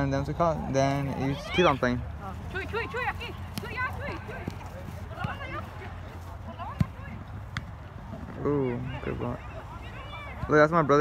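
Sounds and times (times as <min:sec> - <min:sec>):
distant people calling out: 0:08.4 - 0:10.7.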